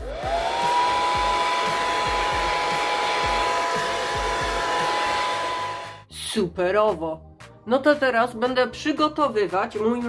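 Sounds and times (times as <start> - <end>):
hair dryer running: 0.0 - 6.1.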